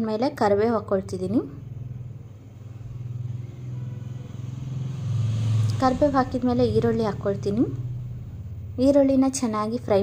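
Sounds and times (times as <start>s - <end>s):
low mechanical rumble: 0.0s - 10.0s.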